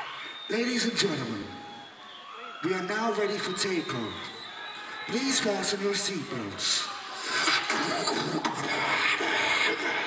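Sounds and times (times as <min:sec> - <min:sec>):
beatboxer imitating jet engines: 0:07.5 - 0:10.0.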